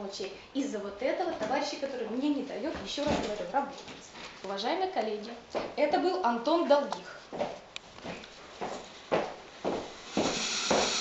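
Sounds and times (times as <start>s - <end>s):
footsteps on office floor: 7.2s - 11.0s
rustling hiss: 8.9s - 11.0s.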